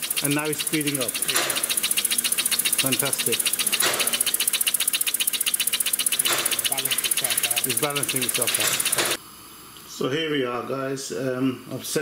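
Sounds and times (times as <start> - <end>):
air engine hissing puffs: 0.0 - 9.2.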